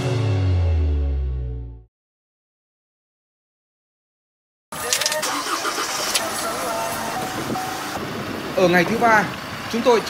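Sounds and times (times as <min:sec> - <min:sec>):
sharp clicks: 0:04.8 - 0:06.3
people's voices: 0:04.8 - 0:10.0
pickup engine running: 0:04.8 - 0:10.0.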